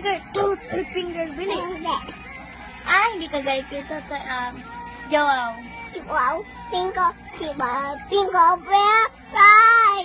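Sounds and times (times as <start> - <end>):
young child singing: 4.0 - 10.0.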